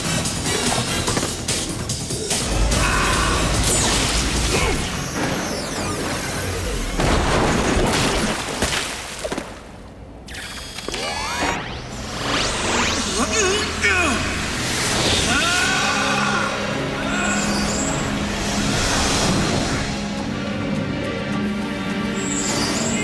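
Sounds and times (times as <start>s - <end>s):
dramatic background music: 0.0s - 8.4s, 10.3s - 23.0s.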